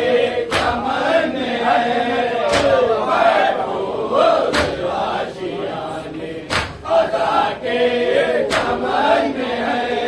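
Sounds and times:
men chanting together: 0.0 - 10.0
sharp slap: 0.5 - 0.9, 2.4 - 2.9, 4.5 - 4.9, 6.5 - 7.0, 8.4 - 8.9.

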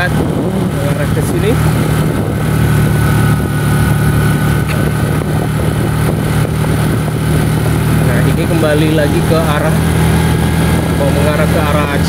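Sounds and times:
vehicle engine and road noise: 0.0 - 12.0.

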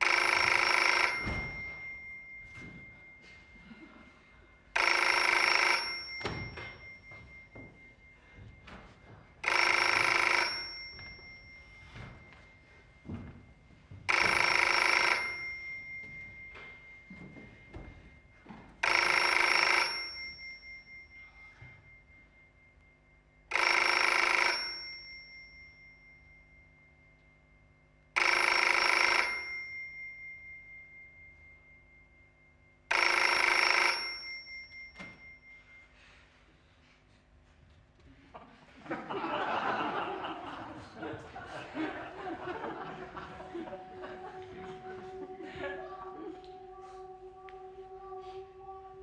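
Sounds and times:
electric bell ringing: 0.0 - 37.0, 38.8 - 49.0.

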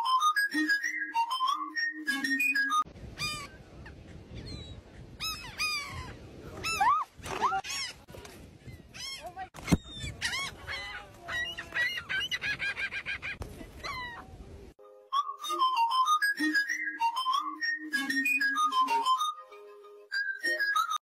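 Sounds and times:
light music: 14.8 - 21.0.

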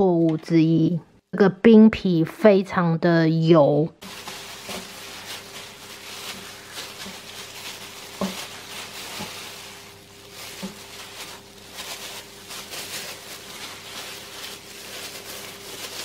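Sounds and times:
plastic gloves rustling and crinkling: 4.0 - 16.0.

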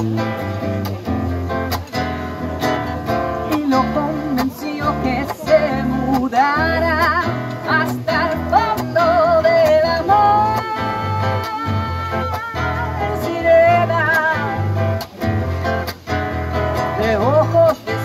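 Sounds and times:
electric bass: 0.0 - 18.0
strummed classical guitar: 0.0 - 18.0
person singing with vibrato: 3.1 - 15.1, 16.5 - 18.0.

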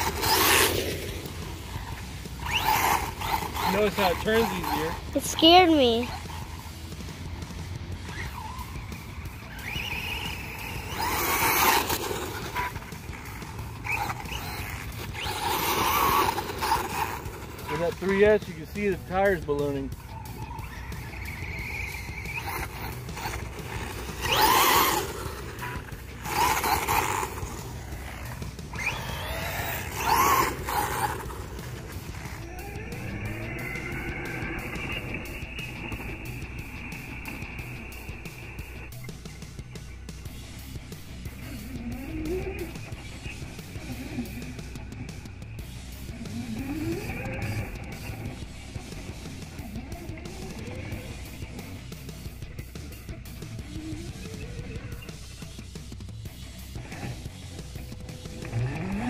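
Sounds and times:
background music: 0.0 - 59.0
electric motor whining: 0.0 - 59.0.

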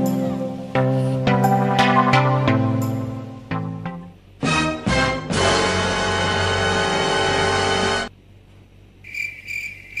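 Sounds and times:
music: 0.0 - 8.1.

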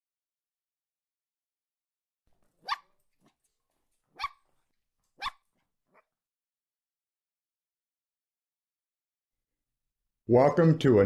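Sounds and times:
dog barking: 2.6 - 3.0, 4.1 - 4.5, 5.2 - 6.1.

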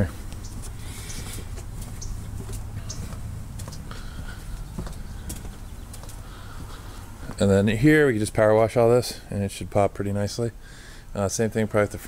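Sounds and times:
footsteps on paving: 0.0 - 7.6
low steady rumble: 0.0 - 10.2.

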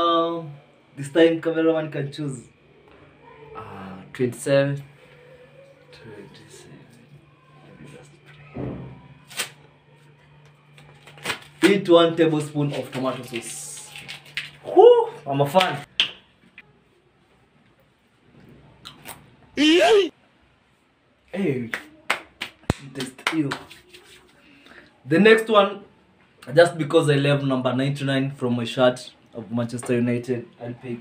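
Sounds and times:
paper ripping: 9.2 - 9.6, 10.8 - 11.9, 12.6 - 14.6
paper rustling: 10.7 - 11.9, 12.5 - 14.7, 23.4 - 24.4.

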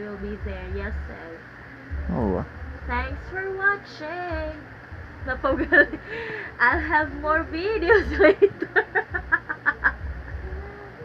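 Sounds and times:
woman laughing: 5.5 - 6.9, 7.8 - 10.1.

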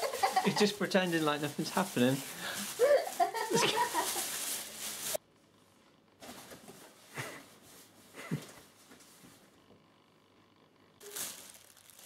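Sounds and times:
plastic bag crinkling: 0.0 - 5.2, 11.0 - 12.0.

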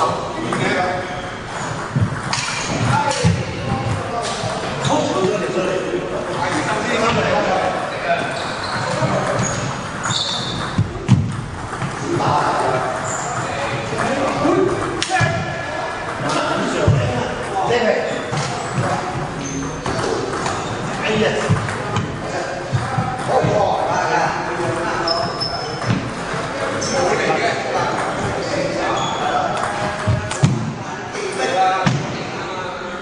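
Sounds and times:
voices chatting: 0.0 - 33.0
table tennis ball on paddles: 1.5 - 5.4, 8.7 - 23.8, 27.8 - 28.6, 29.4 - 30.8
brief high squeak: 8.3 - 10.7.

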